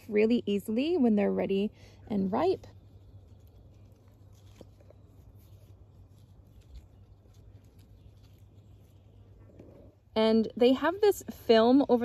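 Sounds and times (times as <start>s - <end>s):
berries picked by hand ticking: 0.0s - 12.0s
leaves rustling: 0.0s - 12.0s
low steady hum: 0.0s - 12.0s.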